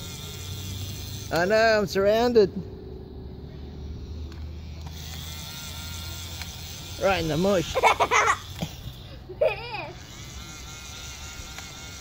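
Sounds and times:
small electric motor whirring: 0.0 - 1.8, 3.8 - 12.0.

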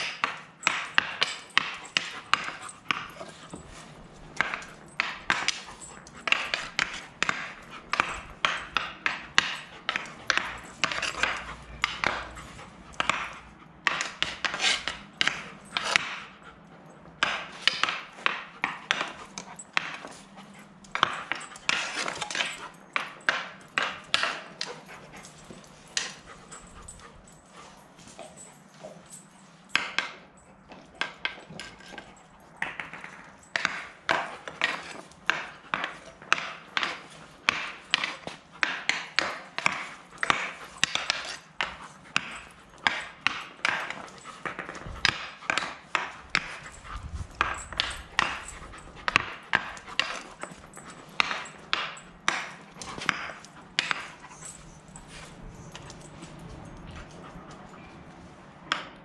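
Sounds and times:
dog panting: 0.3 - 29.4, 33.2 - 58.0
hockey stick tapping ball: 32.6 - 46.6.

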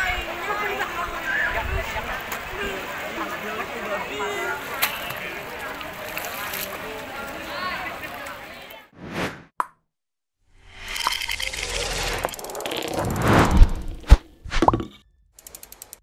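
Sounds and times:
poolside ambience: 0.0 - 9.0
whoosh: 9.0 - 9.5, 10.6 - 14.6
click: 15.4 - 16.0
quick run of ticks: 15.4 - 16.0.

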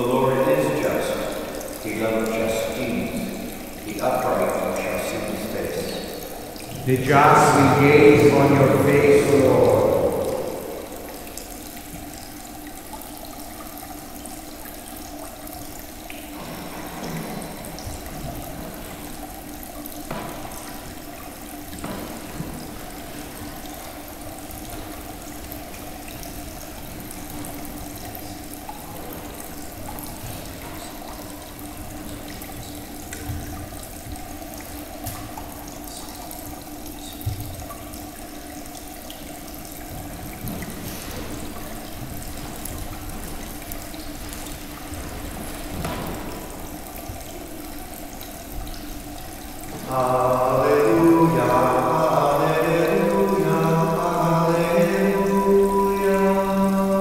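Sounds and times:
fountain water trickling over stones: 0.0 - 57.0
low steady hum: 0.0 - 57.0.

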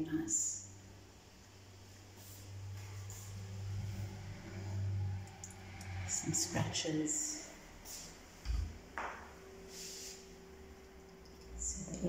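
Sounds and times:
low background hum: 0.0 - 12.0
faint clicks: 5.3 - 6.0.

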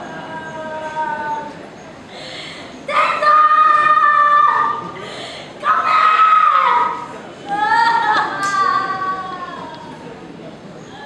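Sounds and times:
high wailing cry: 0.0 - 1.6, 2.9 - 5.0, 5.6 - 10.1
faint murmuring: 0.0 - 11.0.

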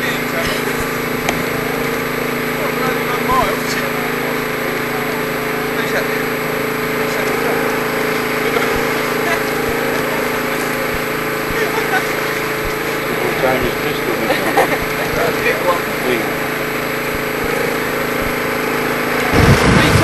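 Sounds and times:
mechanical drone with hum: 0.0 - 20.0
people chattering: 0.0 - 20.0.

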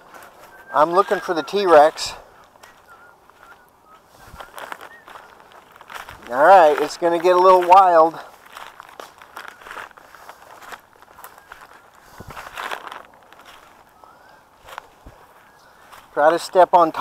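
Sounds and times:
footsteps crunching through grass: 0.0 - 17.0.

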